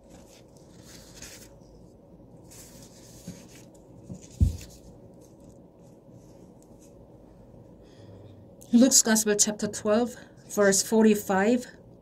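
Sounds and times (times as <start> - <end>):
paper rustling: 0.0 - 7.0.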